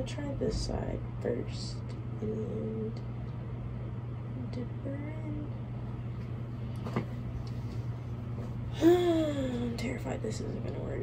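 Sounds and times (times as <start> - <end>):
low background hum: 0.0 - 11.0
woman humming: 8.7 - 9.9.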